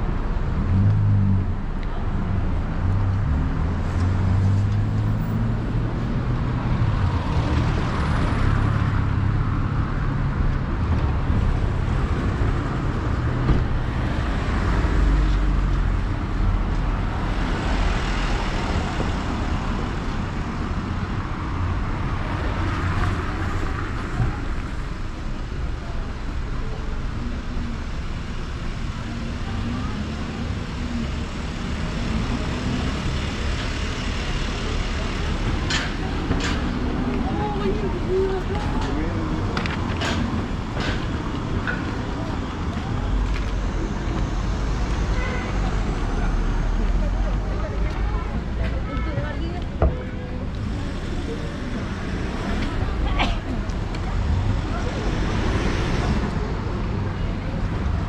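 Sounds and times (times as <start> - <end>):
traffic rumble: 0.0 - 58.0
vehicles passing close by: 0.0 - 58.0.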